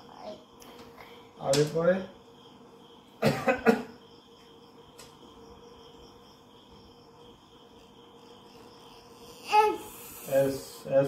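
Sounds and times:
person coughing: 3.2 - 3.9.

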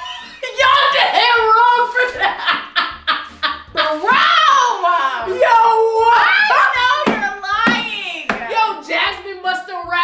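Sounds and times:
women laughing: 0.0 - 1.0, 2.0 - 4.2.

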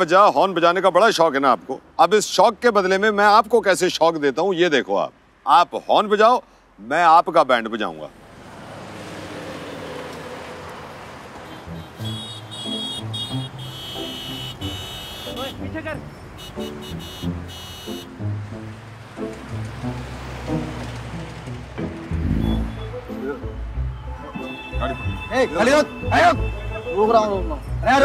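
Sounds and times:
car horn honking: 11.4 - 18.2, 22.3 - 28.0.

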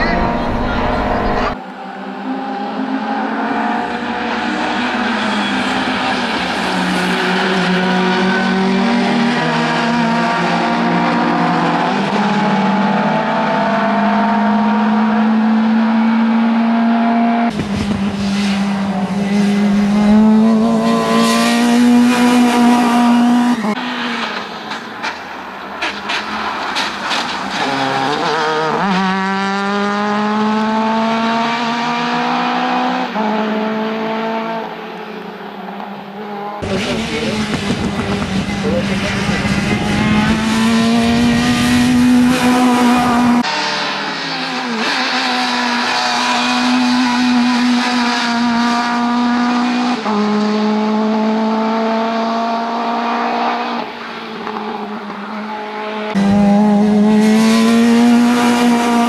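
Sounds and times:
race car engine revving: 0.0 - 25.1, 25.9 - 59.0.

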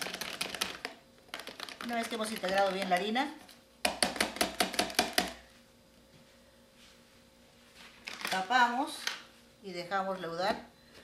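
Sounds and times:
spoon tapping plastic tub: 3.8 - 5.4.

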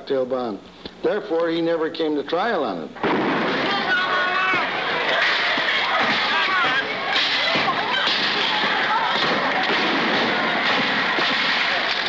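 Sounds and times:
crowd shouting: 3.0 - 12.0
street commotion: 3.0 - 12.0.

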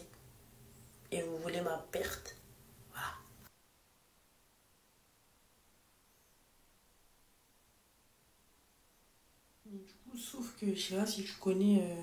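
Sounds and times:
faint steady hiss: 0.0 - 12.0
person speaking: 1.1 - 3.5.

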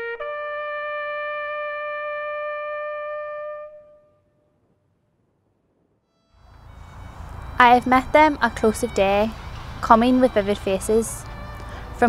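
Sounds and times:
trumpet holding long note: 0.0 - 4.2, 6.4 - 12.0
low rumbling background noise: 6.5 - 12.0.

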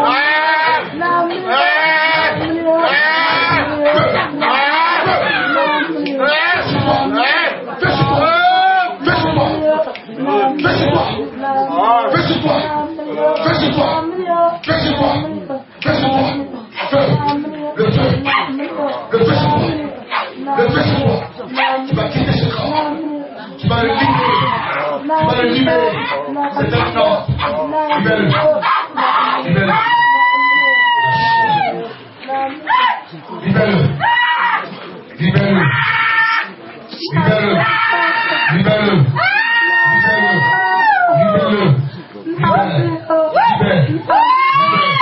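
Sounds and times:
voices shouting and crying out: 0.0 - 31.9, 32.6 - 45.0.

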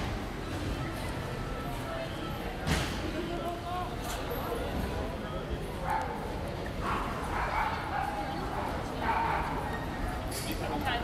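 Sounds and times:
passersby talking: 0.0 - 11.0.

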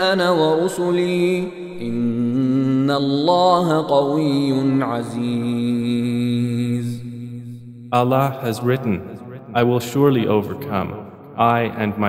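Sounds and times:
man chanting melodic recitation: 0.0 - 12.0.

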